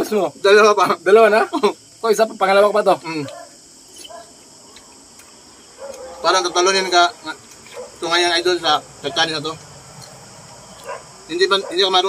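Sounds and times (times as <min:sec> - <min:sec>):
insect chirring: 0:00.0 - 0:12.0.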